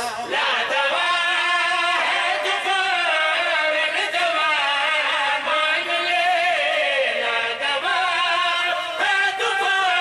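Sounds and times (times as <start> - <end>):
men singing together: 0.0 - 10.0.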